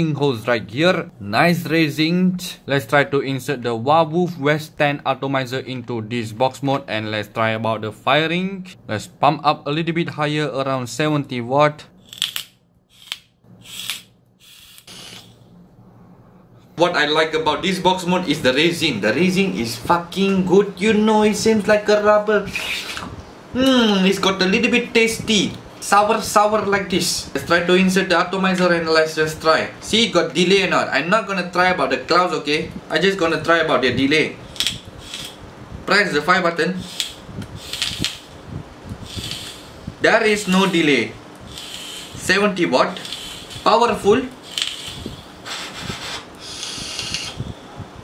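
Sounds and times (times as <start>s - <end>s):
breathy hiss of vape: 13.7s - 15.4s, 35.0s - 35.4s, 36.8s - 38.2s, 39.0s - 39.8s, 41.5s - 42.2s, 43.0s - 43.6s, 44.4s - 47.6s.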